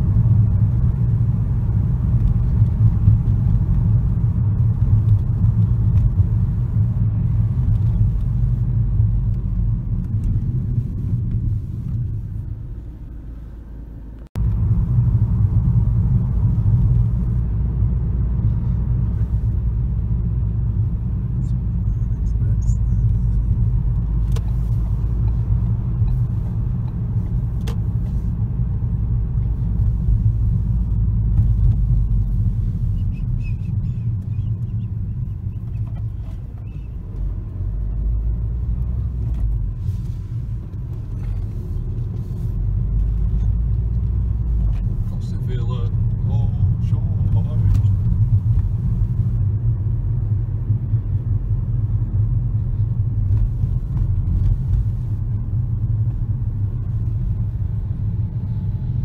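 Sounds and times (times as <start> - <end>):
car engine rumble: 0.0 - 59.0.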